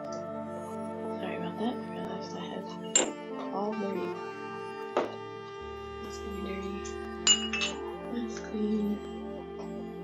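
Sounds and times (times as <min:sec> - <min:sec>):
soft background music: 0:00.0 - 0:10.0
glass jars clinking: 0:02.8 - 0:03.4, 0:06.8 - 0:08.0.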